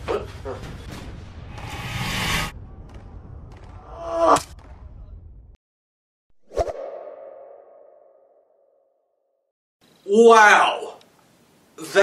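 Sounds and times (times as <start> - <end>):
swoosh and hit: 1.0 - 2.6.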